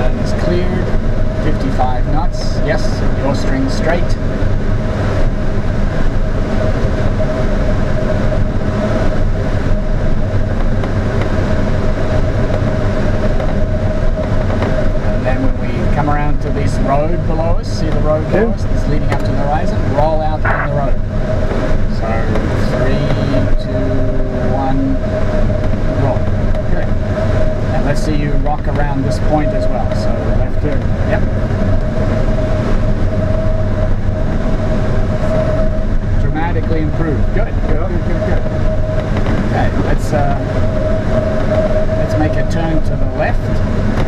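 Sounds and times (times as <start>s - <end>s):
airflow rushing in cockpit: 0.0s - 44.0s.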